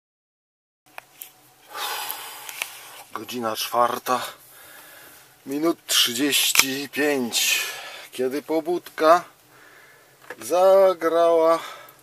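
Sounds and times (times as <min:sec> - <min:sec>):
loud breathy exhale: 0:01.7 - 0:02.9.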